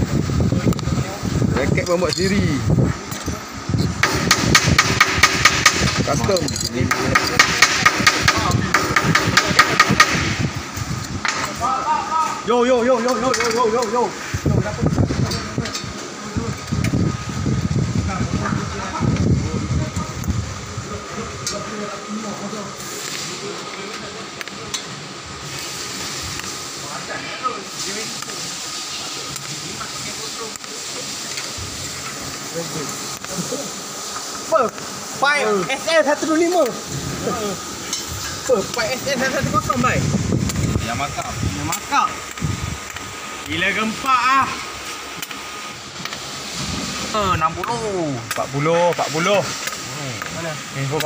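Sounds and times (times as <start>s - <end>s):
steady hiss: 0.0s - 51.0s.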